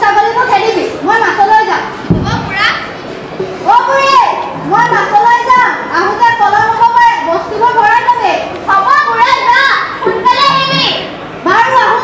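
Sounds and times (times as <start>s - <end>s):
child speaking loudly: 2.2s - 3.0s, 8.7s - 12.0s.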